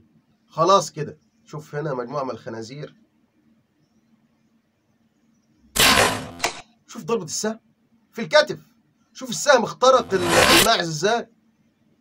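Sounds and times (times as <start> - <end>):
arrow striking knock: 5.8 - 6.6, 10.0 - 10.7
bow shot crack: 5.8 - 6.6.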